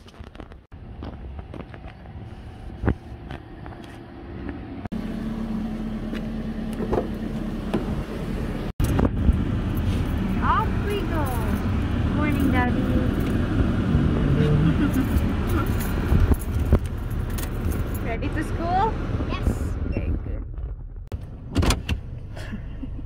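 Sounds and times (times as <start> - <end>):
car engine rumble: 0.0 - 23.0
parking lot ambience: 0.0 - 23.0.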